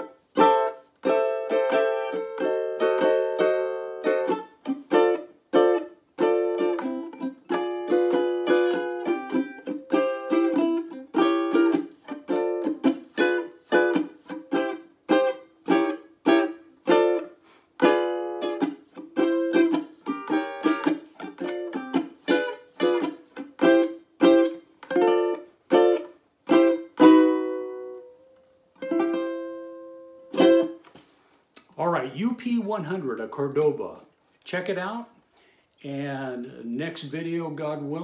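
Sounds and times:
ukulele strumming: 0:00.0 - 0:31.0.

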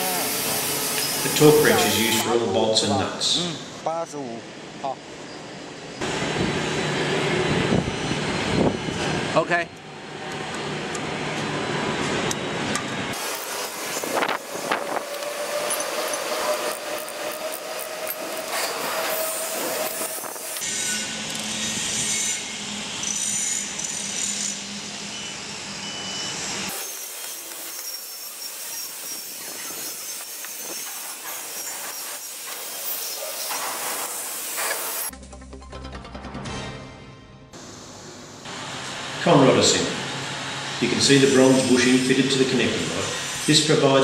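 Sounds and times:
steady workshop hiss: 0:00.0 - 0:05.9, 0:13.1 - 0:17.3, 0:26.6 - 0:35.1, 0:37.6 - 0:44.0.

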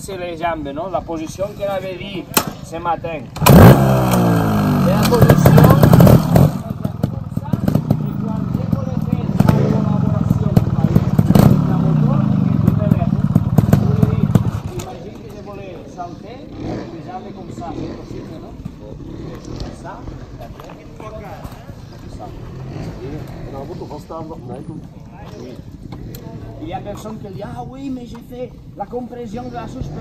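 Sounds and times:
motorcycle engine revving: 0:03.3 - 0:26.9.

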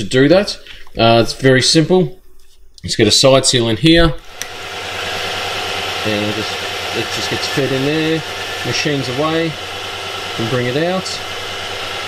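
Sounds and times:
milling spindle whirring: 0:04.2 - 0:12.0
grinding stone running: 0:04.6 - 0:12.0.

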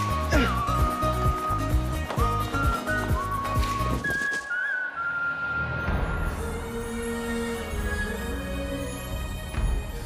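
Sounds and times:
whistle-like high note: 0:02.6 - 0:06.3.

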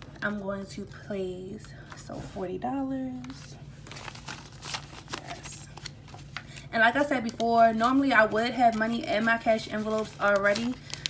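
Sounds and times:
banknotes rustling: 0:01.8 - 0:11.0.

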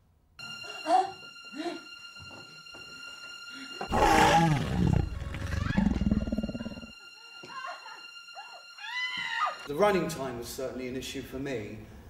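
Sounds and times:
monster roar and growl: 0:03.9 - 0:06.9.

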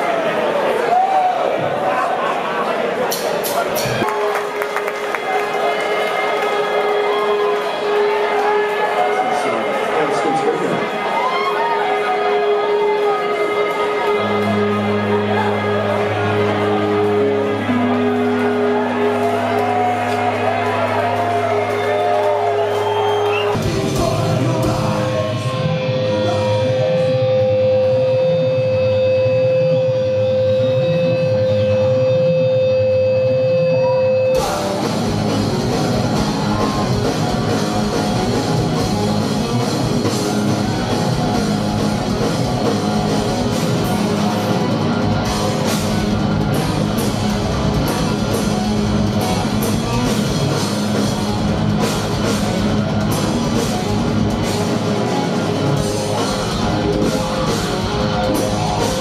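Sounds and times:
crowd cheering: 0:00.0 - 0:59.0
electric guitar long note: 0:11.6 - 0:22.6, 0:23.2 - 0:59.0
low wash of guitar and bass: 0:12.4 - 0:59.0.

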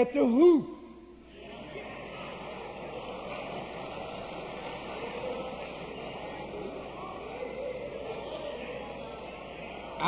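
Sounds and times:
crowd of voices reacting: 0:01.2 - 0:10.0.

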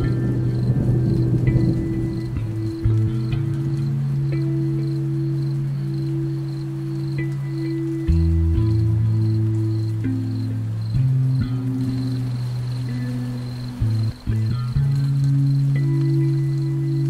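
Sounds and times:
faint rain hiss: 0:00.0 - 0:17.0
synth pad tones: 0:00.0 - 0:17.0.

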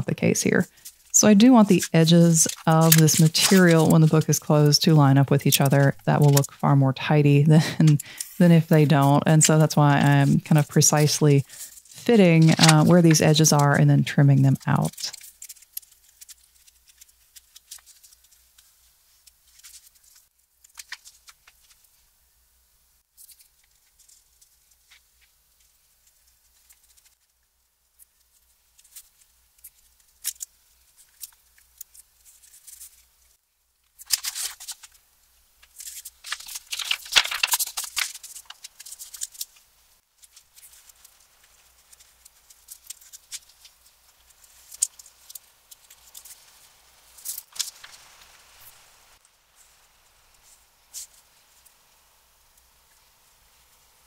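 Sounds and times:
brush scratching and tapping paper: 0:00.4 - 0:21.9, 0:23.2 - 0:27.3, 0:35.6 - 0:39.6, 0:40.2 - 0:48.3
paper rustling: 0:00.5 - 0:06.6, 0:07.5 - 0:21.9, 0:34.0 - 0:35.0, 0:35.6 - 0:39.6, 0:47.2 - 0:48.4.

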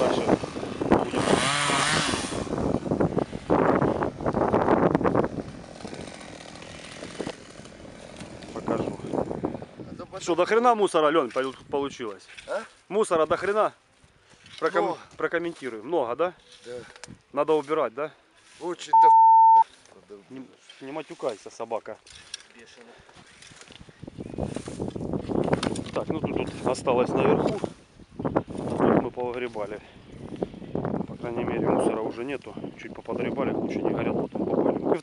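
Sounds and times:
chainsaw cutting branches: 0:00.1 - 0:09.4
censor bleep: 0:18.9 - 0:19.7.

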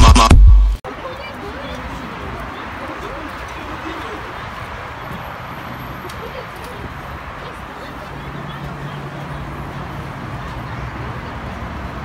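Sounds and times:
low traffic rumble: 0:00.5 - 0:12.0
passers-by talking: 0:00.8 - 0:12.0.

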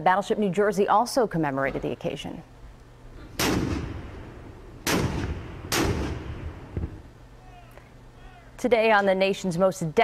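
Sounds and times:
deck gun blasts: 0:03.3 - 0:07.0.

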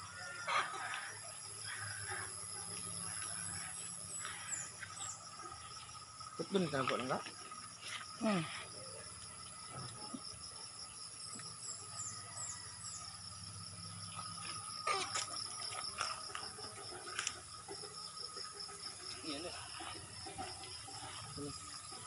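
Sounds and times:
insect chorus: 0:00.0 - 0:22.0.

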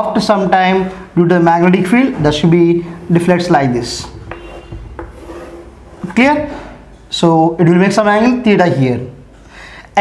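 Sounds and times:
chalk scraping on chalkboard: 0:02.7 - 0:06.7
chalk tapping on board: 0:04.0 - 0:05.7.

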